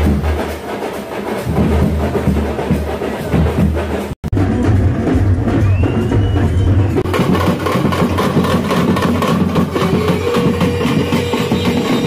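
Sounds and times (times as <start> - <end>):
crowd: 0.0 - 12.0
drums beaten rapidly: 0.0 - 12.0.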